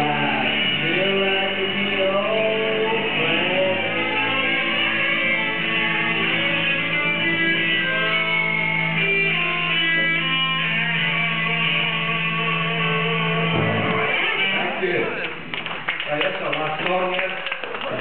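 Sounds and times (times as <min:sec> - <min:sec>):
live rock band playing: 0:00.0 - 0:15.6.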